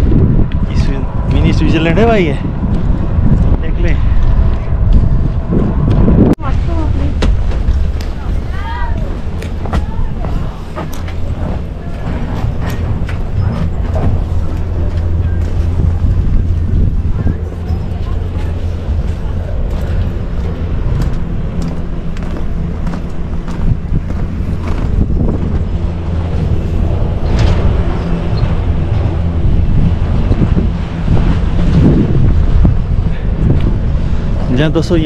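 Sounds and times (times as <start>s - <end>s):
steady low hum: 0.0s - 35.0s
wind buffeting microphone: 0.0s - 35.0s.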